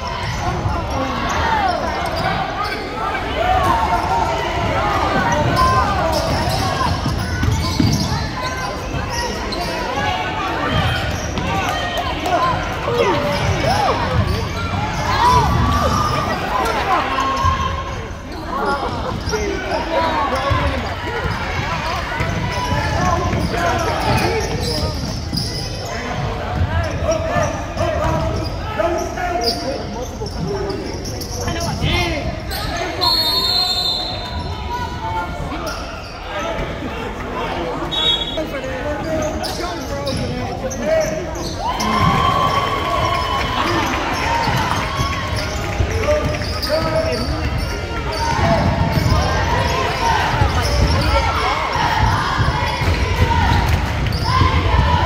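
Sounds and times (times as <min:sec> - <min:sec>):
basketball bouncing on court: 0:04.6 - 0:08.3, 0:20.4 - 0:28.5, 0:44.3 - 0:55.0.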